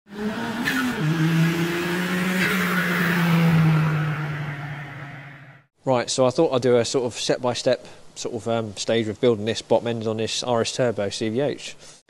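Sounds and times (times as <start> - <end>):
car engine at high revs: 0.1 - 5.6.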